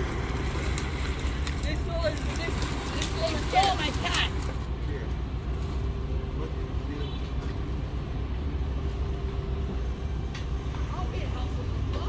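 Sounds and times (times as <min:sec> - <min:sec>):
diesel truck engine rumbling: 0:00.0 - 0:12.0.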